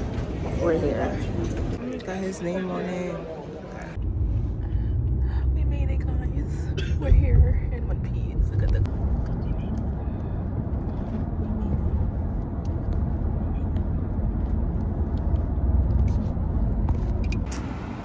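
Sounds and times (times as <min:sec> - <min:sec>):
car cabin road rumble: 0:03.9 - 0:18.0.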